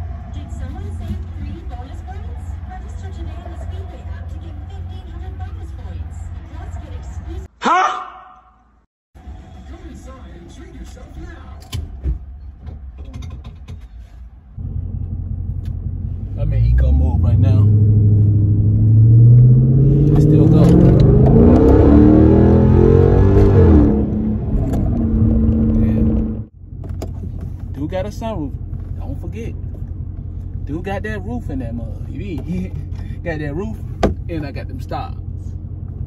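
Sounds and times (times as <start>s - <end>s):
car engine revving: 0.0s - 7.5s, 14.6s - 36.0s.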